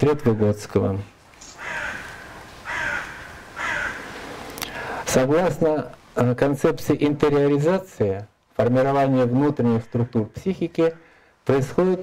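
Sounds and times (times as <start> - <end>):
crow cawing: 1.5 - 4.3.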